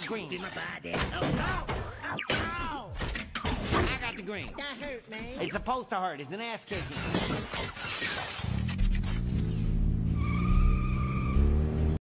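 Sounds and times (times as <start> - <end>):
car engine revving: 8.8 - 12.0
tyre squeal: 10.2 - 11.5.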